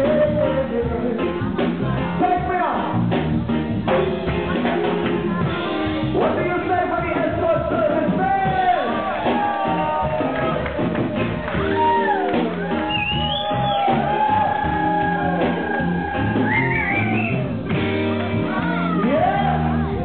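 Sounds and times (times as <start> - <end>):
person singing: 0.0 - 2.5
live band playing: 0.0 - 20.0
sliding lead notes: 0.0 - 20.0.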